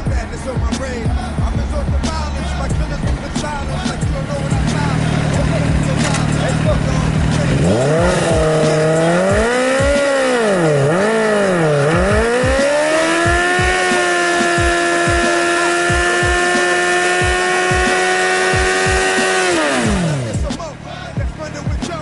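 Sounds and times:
motorcycle engine revving: 0.0 - 22.0.

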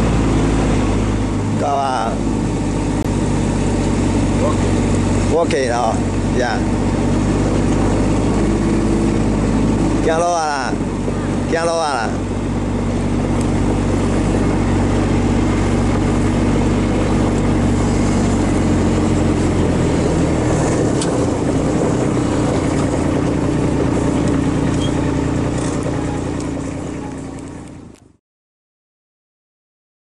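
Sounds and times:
utility vehicle engine running: 0.0 - 28.2.

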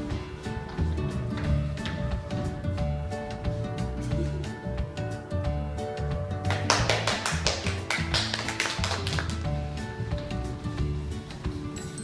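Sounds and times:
background music: 0.0 - 12.0
audience applause: 6.5 - 9.5.

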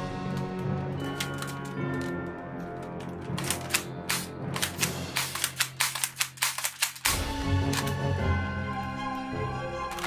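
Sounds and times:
toy rifle plastic clicks: 3.4 - 8.0.

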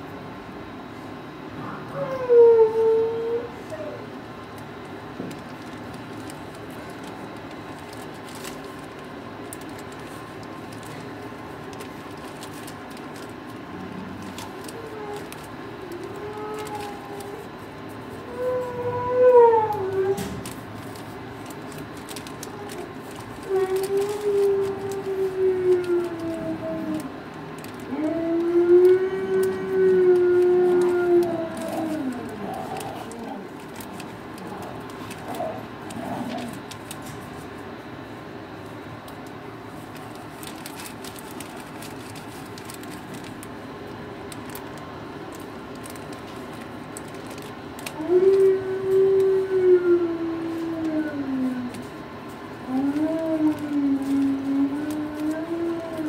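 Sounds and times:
dog howling: 1.6 - 4.1, 14.6 - 20.6, 22.4 - 36.7, 47.8 - 51.9, 52.6 - 56.0.

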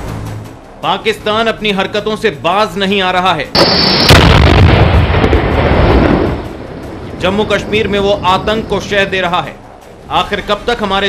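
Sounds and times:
large explosion with deep rumble: 3.6 - 7.8.

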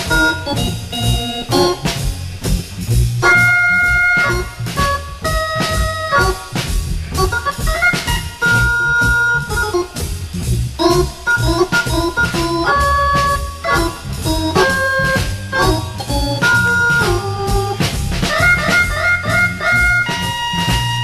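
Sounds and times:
bass and drums: 0.0 - 21.0
swing jazz organ: 0.0 - 21.0.

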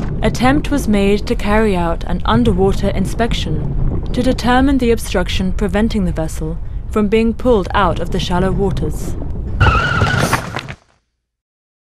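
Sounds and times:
low rumble: 0.0 - 10.4
loud whistling screech: 9.6 - 10.4.

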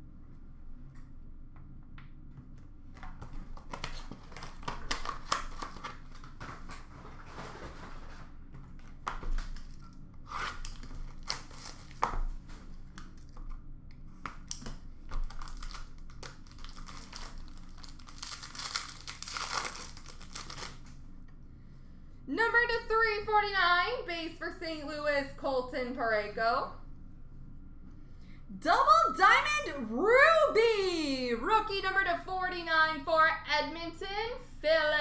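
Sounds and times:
wrappers tearing and crinkling: 3.6 - 7.6, 9.4 - 12.1, 14.4 - 21.0.

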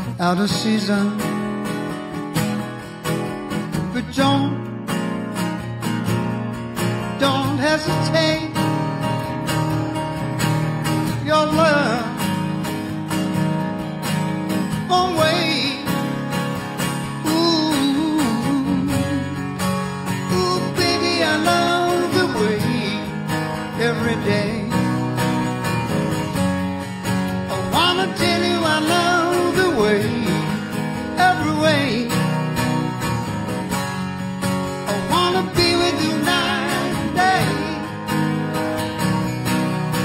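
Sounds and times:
sliding guitar melody: 0.0 - 40.0
strummed acoustic guitar chords: 0.0 - 40.0.

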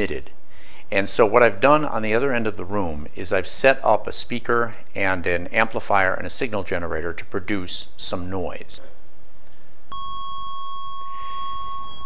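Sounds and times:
sine wave test tone: 9.9 - 12.0.

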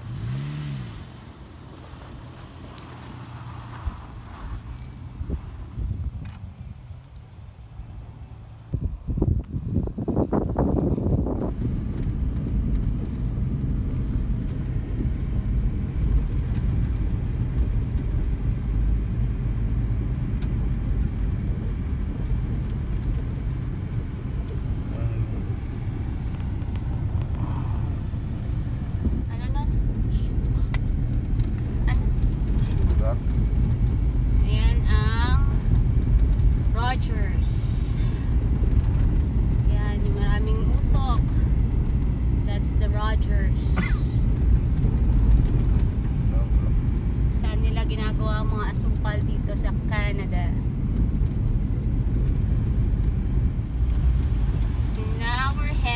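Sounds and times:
car engine and tyres rumbling: 0.0 - 55.9.

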